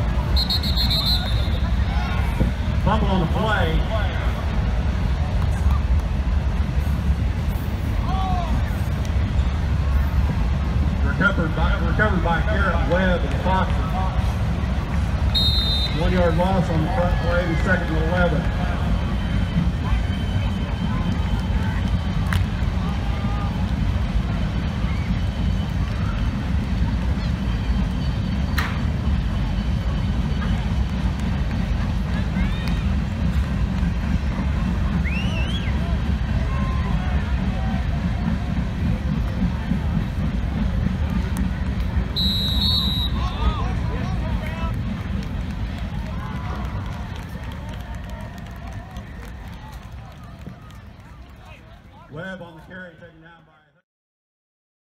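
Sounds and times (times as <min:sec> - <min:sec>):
freight train cars rumbling past: 0:00.0 - 0:52.1
crowd chatter: 0:00.0 - 0:53.8
brief high whistle: 0:00.3 - 0:01.7, 0:15.3 - 0:16.0, 0:35.0 - 0:35.8, 0:42.1 - 0:43.6.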